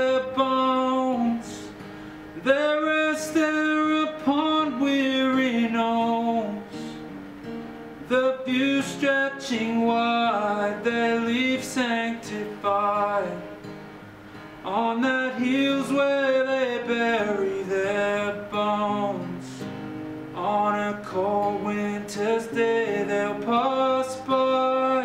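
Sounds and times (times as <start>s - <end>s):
man singing: 0.0s - 1.8s, 2.4s - 7.1s, 8.1s - 13.6s, 14.6s - 25.0s
fingerpicked acoustic guitar: 0.0s - 25.0s.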